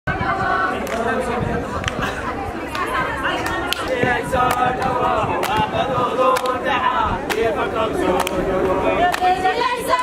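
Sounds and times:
crowd voices: 0.1 - 10.0
sharp claps: 0.8 - 1.1, 2.7 - 5.7, 6.3 - 6.6, 8.1 - 8.4, 9.1 - 9.4.

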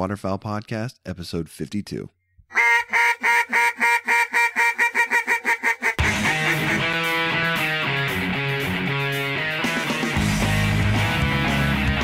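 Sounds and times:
duck quacking: 2.5 - 7.3.

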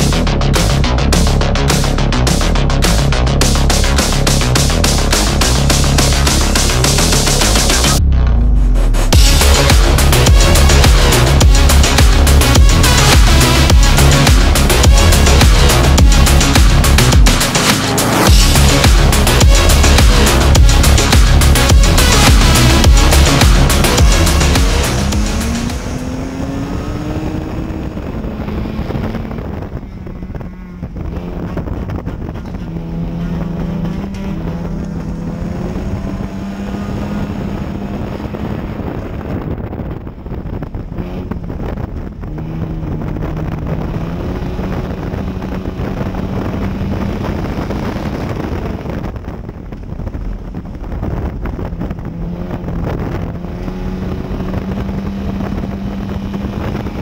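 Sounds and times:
race car engine revving: 0.0 - 57.0
wind and road noise: 0.0 - 57.0.

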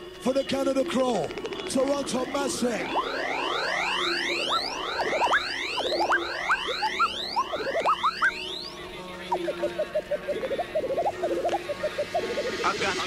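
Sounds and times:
upward-gliding electronic blips: 1.1 - 13.0
rising synth sweeps: 1.3 - 13.0.

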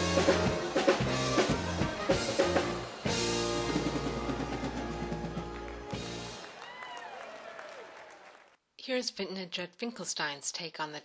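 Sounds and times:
live band music: 0.0 - 6.6
applause: 3.6 - 8.6.

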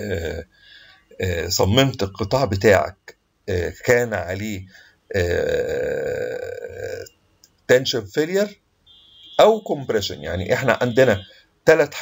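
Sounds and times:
man's drawn-out hesitation sound: 0.0 - 0.5, 1.1 - 7.1, 9.4 - 12.0.

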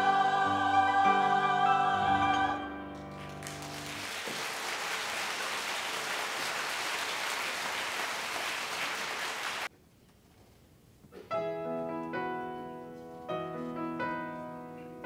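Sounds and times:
audience applause: 3.1 - 9.7
piano chord: 11.3 - 15.0.

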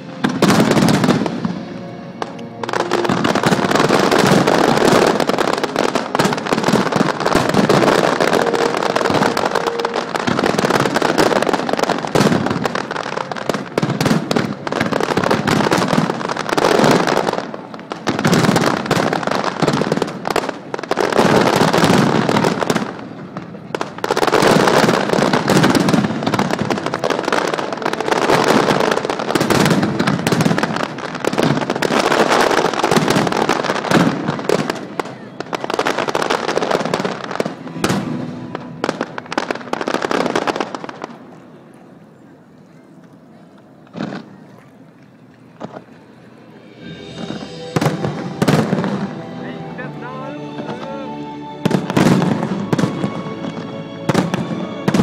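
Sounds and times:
fireworks bangs and crackling: 0.0 - 41.6, 43.6 - 55.0.

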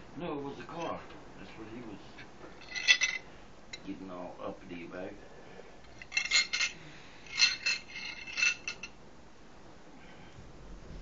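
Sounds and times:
small metal pieces jingling: 2.6 - 3.2, 6.0 - 8.9.

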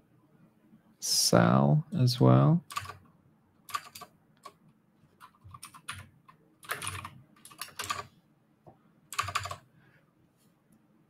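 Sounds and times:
typing on computer keyboard: 2.6 - 3.0, 3.7 - 4.6, 5.2 - 8.1, 9.1 - 9.6.

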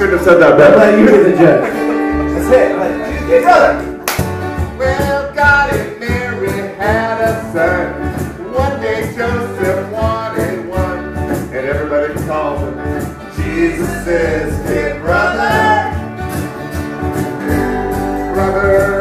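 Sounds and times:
bass guitar: 0.0 - 19.0
strummed acoustic guitars: 0.0 - 19.0
voices singing along: 4.8 - 16.0.

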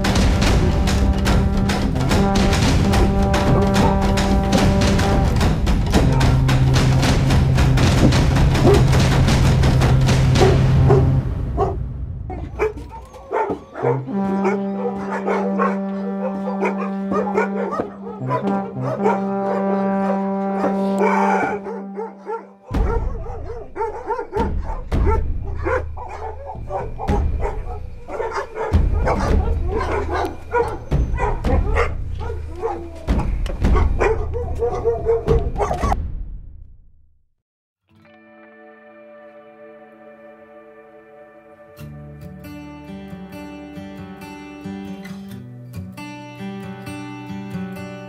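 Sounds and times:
background music: 0.0 - 36.1, 37.9 - 48.0
dogs barking: 0.1 - 7.0, 8.0 - 9.1, 10.2 - 36.0.

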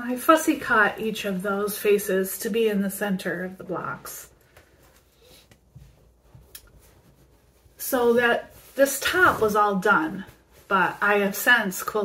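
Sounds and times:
fabric rustling: 3.5 - 12.0.

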